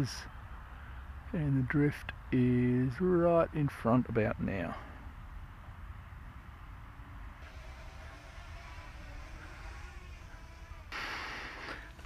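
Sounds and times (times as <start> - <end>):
distant propeller aircraft whine: 4.8 - 12.0.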